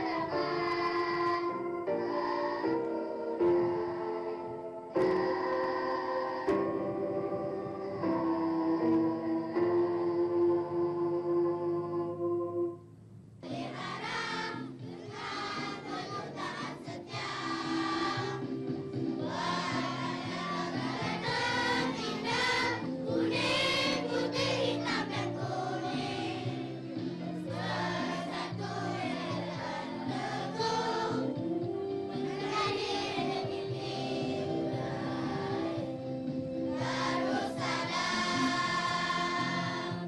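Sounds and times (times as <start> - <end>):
children's choir singing: 0.0 - 12.8, 13.4 - 40.0
musical accompaniment: 0.0 - 40.0.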